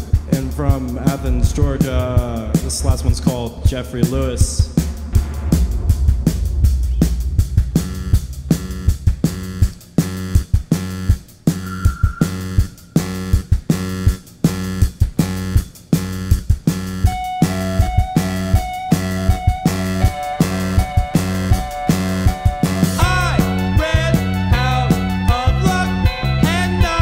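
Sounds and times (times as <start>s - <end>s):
rock band playing: 17.1s - 27.0s.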